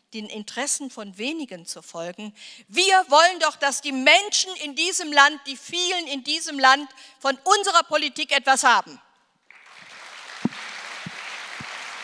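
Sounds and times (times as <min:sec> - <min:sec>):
audience applauding: 0:09.5 - 0:12.0.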